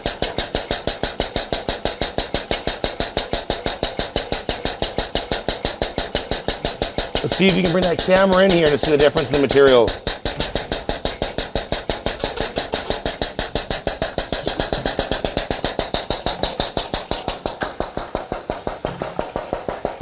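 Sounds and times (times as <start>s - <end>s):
diaphragm pump clattering: 0.0s - 20.0s.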